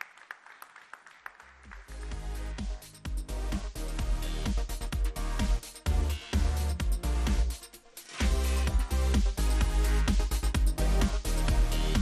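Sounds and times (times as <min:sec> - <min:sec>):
electronic dance music: 0:01.6 - 0:12.0.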